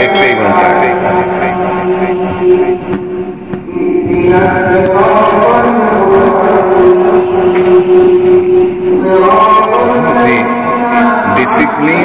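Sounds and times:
person chanting long note: 0.0 - 2.9.

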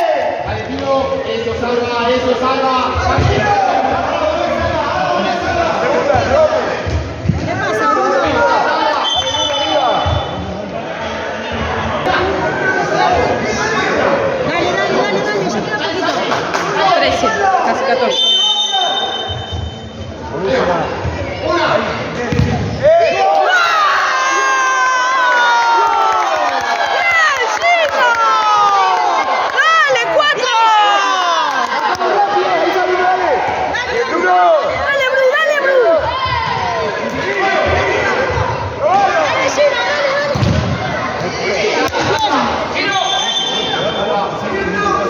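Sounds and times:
spectators shouting and cheering: 0.0 - 45.0.

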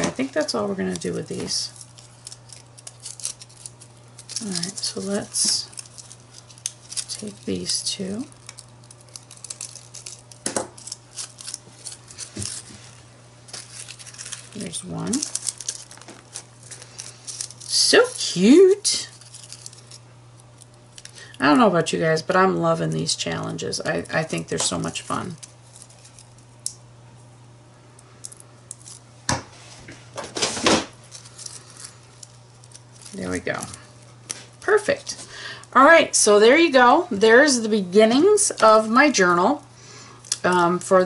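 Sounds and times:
paper rustling and crinkling: 0.0 - 18.2, 19.0 - 20.0, 29.6 - 35.2
steady low hum: 0.0 - 41.0.

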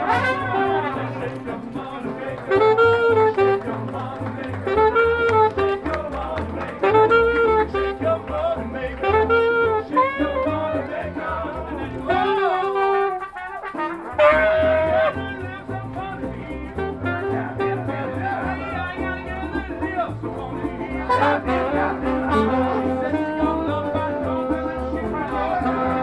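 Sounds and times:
trumpets: 0.0 - 1.5, 2.3 - 11.4, 12.0 - 16.0, 16.8 - 18.9, 21.0 - 24.4, 25.1 - 26.0
pulsing bass line: 0.0 - 12.5, 14.2 - 26.0
saxophone: 0.0 - 19.1, 20.8 - 26.0.

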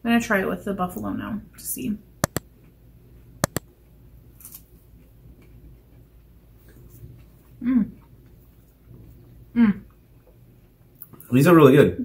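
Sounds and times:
mouse click sound effects: 2.2 - 2.4, 3.4 - 3.6.

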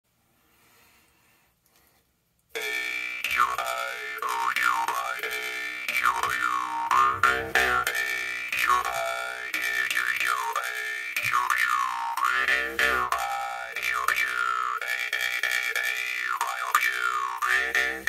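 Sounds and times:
jaw harp twanging: 2.6 - 18.0.

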